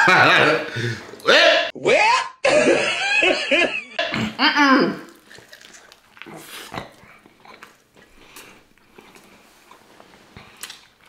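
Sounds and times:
man making wordless vocal sounds: 0.1 - 2.8.

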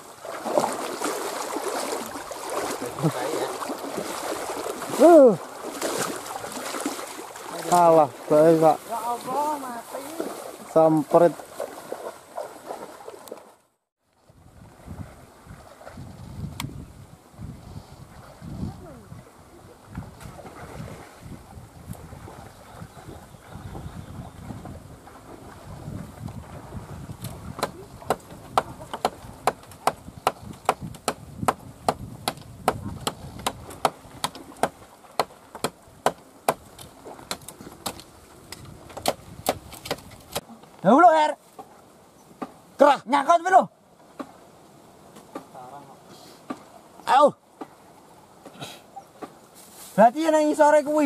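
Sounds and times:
rustling in dry bamboo: 0.0 - 13.4, 48.6 - 51.0.

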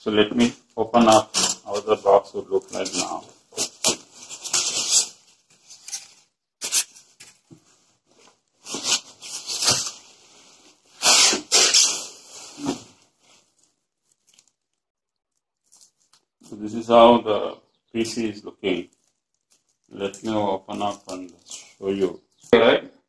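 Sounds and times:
cardboard and plastic wrap rustling: 0.4 - 16.6, 18.7 - 22.1.

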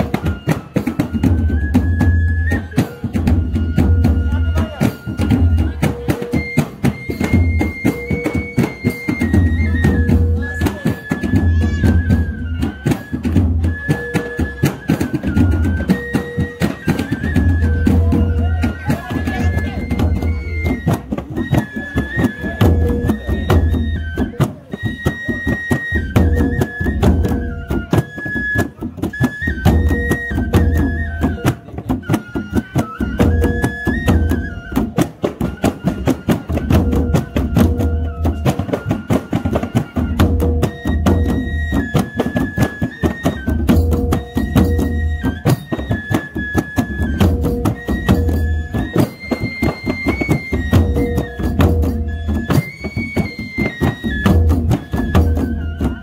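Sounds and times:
hand drums beating fast rhythm: 0.0 - 56.0.

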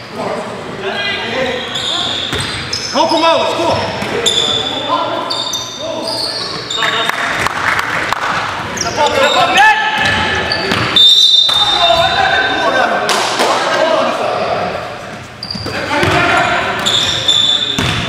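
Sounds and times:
sneakers squeaking: 1.0 - 7.5, 8.4 - 12.7, 14.3 - 18.0
sharp high squeal: 1.5 - 3.3, 4.2 - 7.1, 10.5 - 11.9, 16.8 - 17.8
players calling out: 8.4 - 18.0
basketball bouncing: 10.0 - 11.0, 16.0 - 16.9, 17.8 - 18.0.

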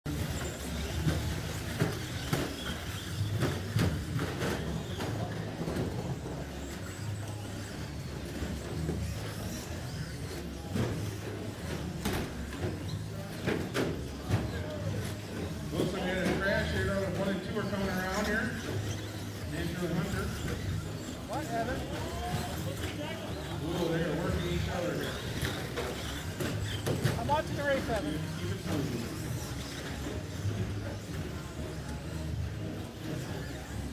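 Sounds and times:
toy trucks clacking and bumping: 0.1 - 7.0, 7.6 - 32.3
low hum of hall: 0.1 - 33.9
voices: 0.1 - 33.9.

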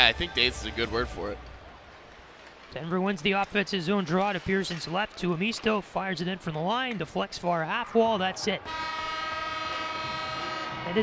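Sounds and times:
arena horn long blast: 8.6 - 11.0.

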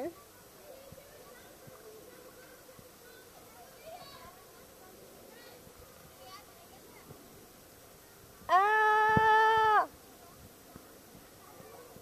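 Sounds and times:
person shouting: 8.5 - 9.9.

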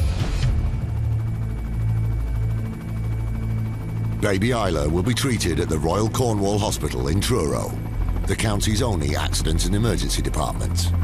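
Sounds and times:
helicopter drone: 0.0 - 11.0.

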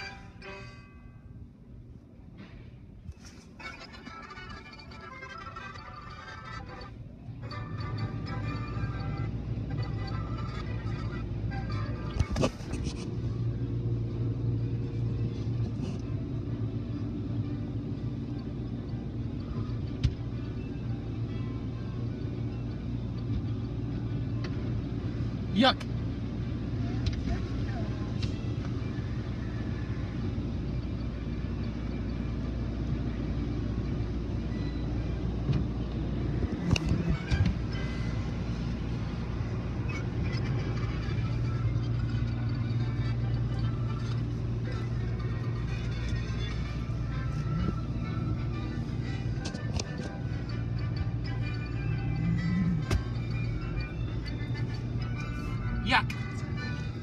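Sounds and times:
music playing: 0.0 - 1.3, 3.1 - 25.6, 27.7 - 57.0
low rumble inside car wash: 0.0 - 57.0.

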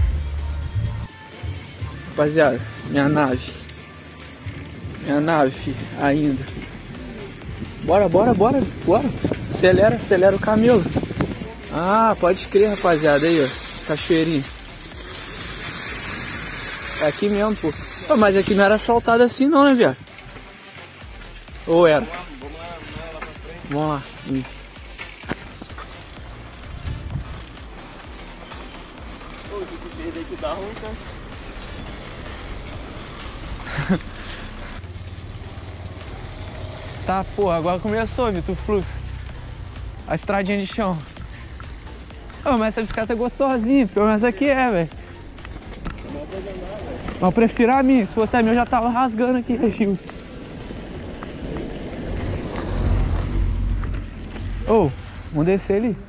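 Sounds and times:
background music: 0.0 - 56.0
bicycle rattling and knocking: 2.2 - 56.0
wind rumbling on microphone: 4.4 - 12.8, 26.2 - 27.8, 49.5 - 55.4.

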